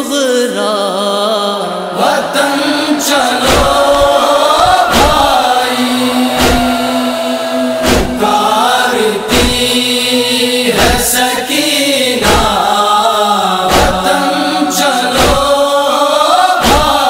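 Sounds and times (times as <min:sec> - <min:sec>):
man singing a lament: 0:00.0 - 0:17.0
backing voices: 0:00.9 - 0:17.0
deep drum beat: 0:03.5 - 0:05.4, 0:06.3 - 0:06.9, 0:07.8 - 0:08.2, 0:09.3 - 0:09.7.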